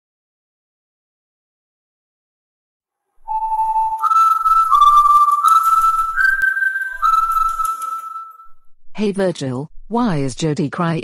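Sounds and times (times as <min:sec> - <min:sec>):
whistled tune: 0:03.2 - 0:08.7.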